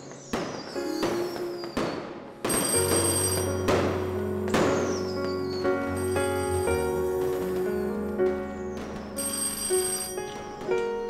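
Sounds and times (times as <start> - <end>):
soft background music: 0.2 - 11.0.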